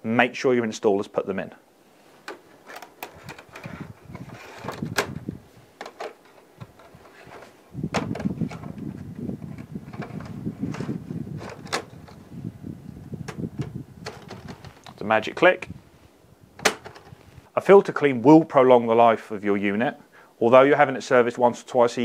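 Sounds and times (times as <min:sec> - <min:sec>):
low rustling of filters: 0:01.6 - 0:17.6
plastic clicks and knocks: 0:02.2 - 0:05.2, 0:05.8 - 0:06.9, 0:07.9 - 0:08.8, 0:09.5 - 0:12.2, 0:13.2 - 0:15.0, 0:16.6 - 0:17.2.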